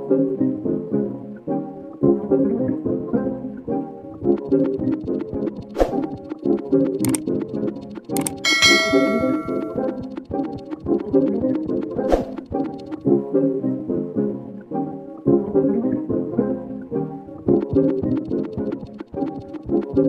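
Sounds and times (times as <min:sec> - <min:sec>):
background music with steady beat: 0:00.6 - 0:20.0
bright bell-like ding: 0:08.4 - 0:09.9.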